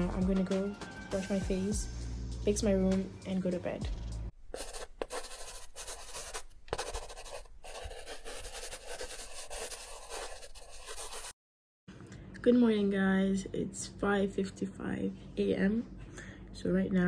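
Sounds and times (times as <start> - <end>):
pen scratching on paper: 4.4 - 11.4.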